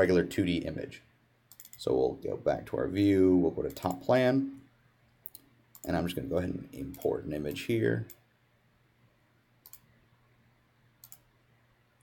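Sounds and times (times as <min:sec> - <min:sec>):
computer mouse clicks: 0:01.5 - 0:01.8, 0:05.2 - 0:06.0, 0:09.6 - 0:09.9, 0:11.0 - 0:11.3.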